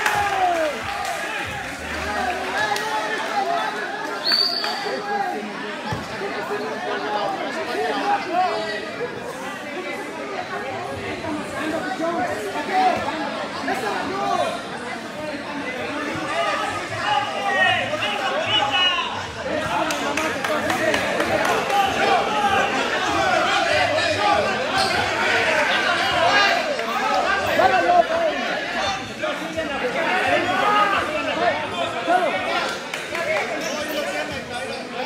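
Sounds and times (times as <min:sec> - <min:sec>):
crowd chattering: 0:00.0 - 0:35.0.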